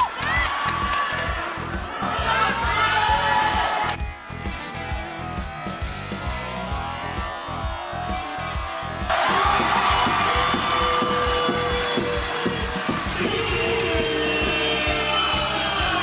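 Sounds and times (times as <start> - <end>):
arena music with drum beat: 0.0 - 16.0
crowd cheering and shouting: 0.0 - 16.0.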